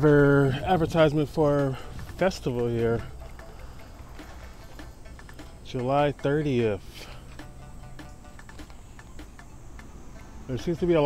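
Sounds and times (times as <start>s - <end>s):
low street rumble: 0.0s - 11.0s.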